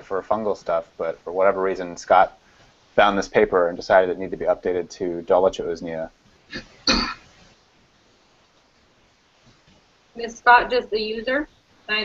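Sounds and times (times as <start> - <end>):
person clearing throat: 6.5 - 7.2.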